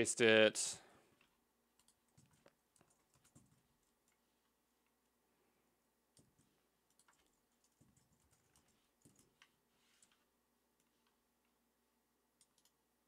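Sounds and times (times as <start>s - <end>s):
computer keyboard keystrokes: 1.2s - 4.2s, 6.1s - 10.2s, 12.4s - 12.8s.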